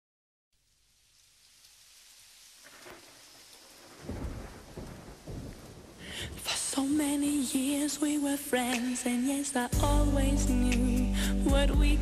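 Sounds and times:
rain falling: 0:00.6 - 0:12.0
thunder rumbling: 0:02.7 - 0:08.1.

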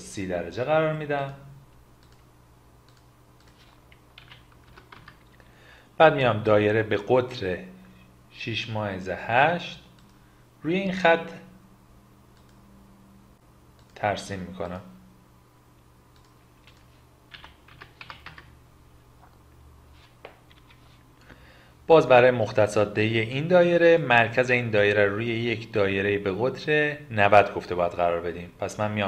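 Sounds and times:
computer keyboard keystrokes: 0:02.9 - 0:05.3, 0:16.2 - 0:18.5.

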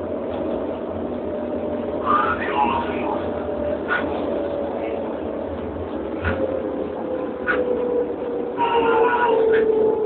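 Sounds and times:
electric train motors whining: 0:01.2 - 0:10.0
higher whine: 0:01.5 - 0:10.0.

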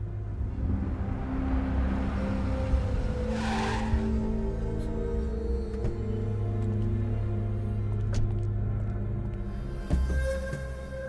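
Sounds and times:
film music with long held notes: 0:00.0 - 0:11.0
car driving up and braking: 0:00.4 - 0:06.4.

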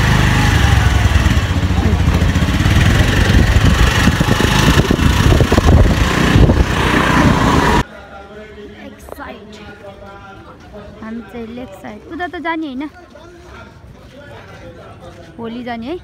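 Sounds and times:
motorbike engine running: 0:00.0 - 0:07.8
wind buffeting microphone: 0:02.4 - 0:07.8.

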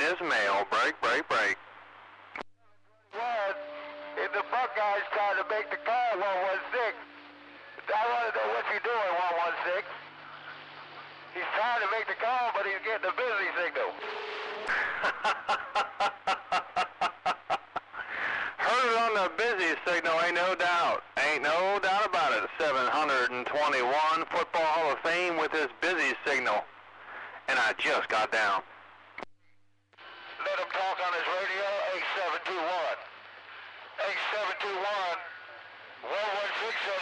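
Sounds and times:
steady radio tone: 0:00.0 - 0:01.6, 0:02.6 - 0:28.6
unclear talk over radio: 0:00.0 - 0:01.6, 0:02.4 - 0:07.0, 0:07.8 - 0:10.6, 0:11.3 - 0:14.0, 0:18.1 - 0:28.7, 0:30.3 - 0:37.0
low steady hum: 0:00.0 - 0:24.0
man laughing over radio: 0:14.7 - 0:18.6.

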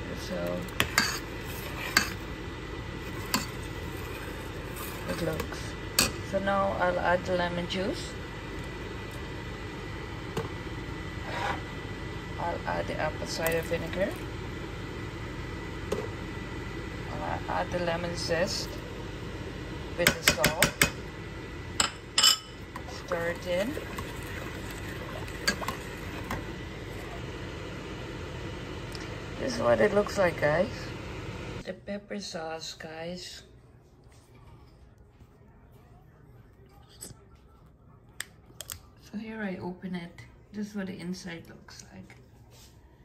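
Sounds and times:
fan humming with whine: 0:00.0 - 0:43.0.

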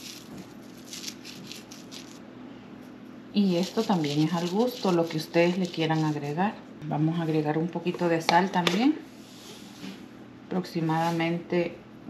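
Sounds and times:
dried herbs crumbling between fingers: 0:00.0 - 0:02.2, 0:03.4 - 0:06.2.

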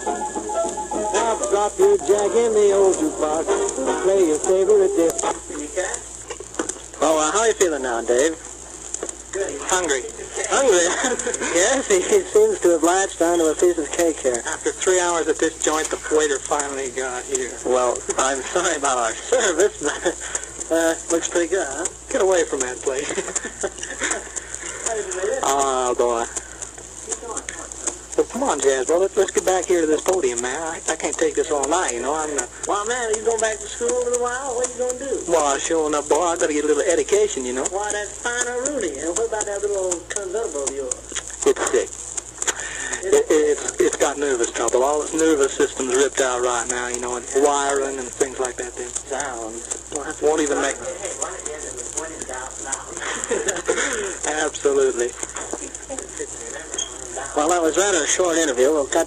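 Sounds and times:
faint voices on recording: 0:00.0 - 0:08.6, 0:09.2 - 0:59.0
indistinct talk: 0:00.0 - 0:59.0
record crackles: 0:00.0 - 0:59.0
record surface hiss: 0:00.0 - 0:59.0.

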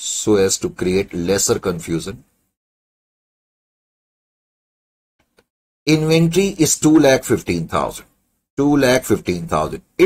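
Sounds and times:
man speaking: 0:00.0 - 0:02.3, 0:05.9 - 0:10.0.

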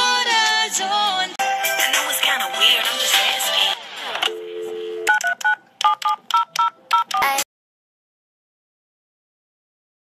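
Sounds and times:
telephone keypad tones: 0:04.3 - 0:07.3.

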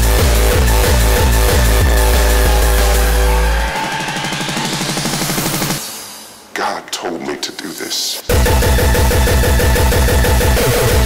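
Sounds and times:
hardcore electronic music: 0:00.0 - 0:06.5, 0:07.6 - 0:11.0
stuttering synth pattern: 0:08.3 - 0:11.0.

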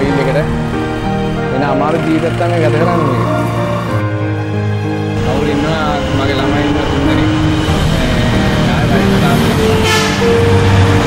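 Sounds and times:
music with long held notes: 0:00.0 - 0:11.0
road traffic rumble: 0:00.0 - 0:11.0
man's voice: 0:01.4 - 0:04.0, 0:05.2 - 0:10.0.

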